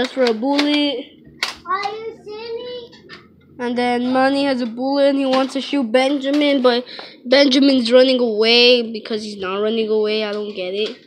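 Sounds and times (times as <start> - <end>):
child talking: 0.0 - 11.0.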